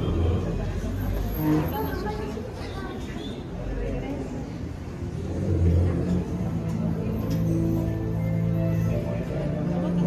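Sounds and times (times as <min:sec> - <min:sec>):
murmur of guests: 0:00.0 - 0:10.0.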